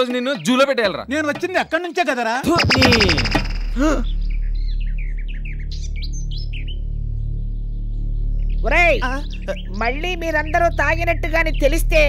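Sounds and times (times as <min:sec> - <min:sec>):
small birds chirping: 0:00.0 - 0:12.0.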